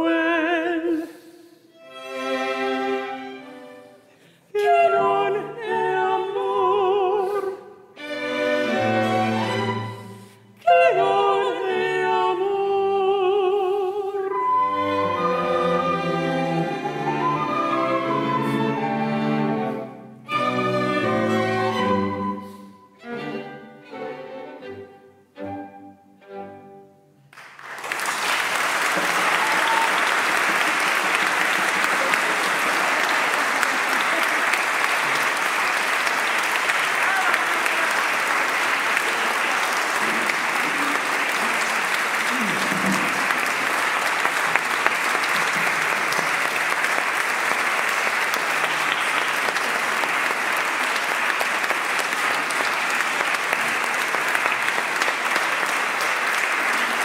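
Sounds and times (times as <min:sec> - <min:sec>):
audience applause: 0:27.3 - 0:57.0.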